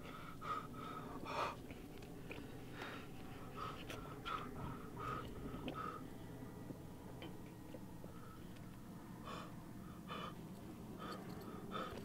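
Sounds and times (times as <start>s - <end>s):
man gasping for breath: 9.2s - 10.4s, 11.0s - 12.0s.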